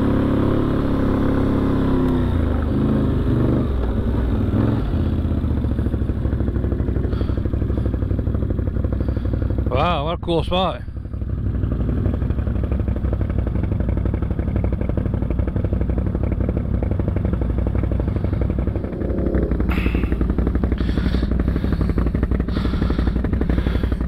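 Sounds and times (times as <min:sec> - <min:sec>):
atv engine idling: 0:00.0 - 0:24.0.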